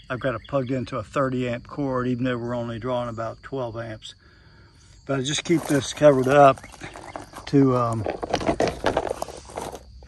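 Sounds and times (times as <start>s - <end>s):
plastic cover scraping on gravel: 5.3s - 10.0s.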